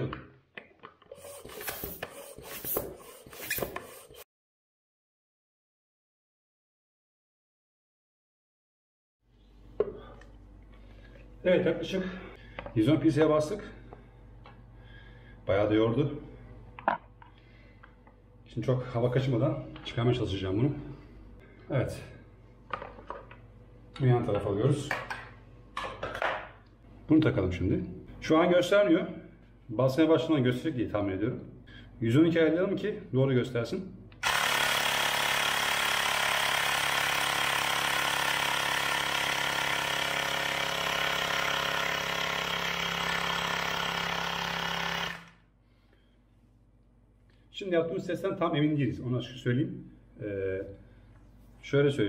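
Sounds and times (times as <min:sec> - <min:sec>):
hand pump strokes of rushing air: 0:01.1 - 0:04.3.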